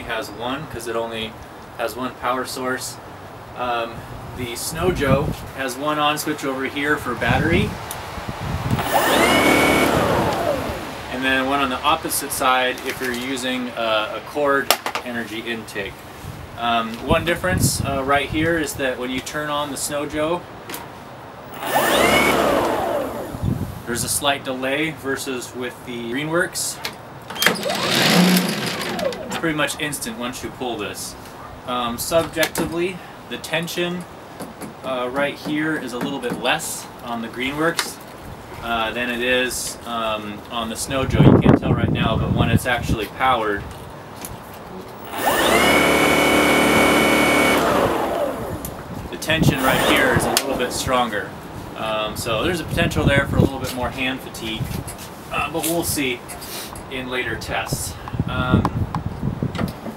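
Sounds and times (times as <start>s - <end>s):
electric snow thrower motor whine: 8.8s - 11.2s, 21.5s - 23.6s, 27.5s - 29.4s, 45.0s - 48.9s, 49.5s - 51.1s.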